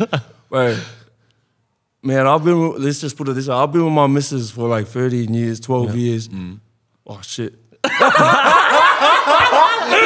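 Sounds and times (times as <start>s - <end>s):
men laughing loudly: 0.0s - 0.4s, 7.8s - 10.0s.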